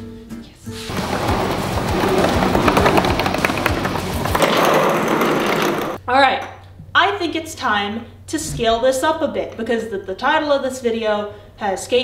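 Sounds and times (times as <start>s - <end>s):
skateboard wheels rattling rumble: 0.9s - 6.0s.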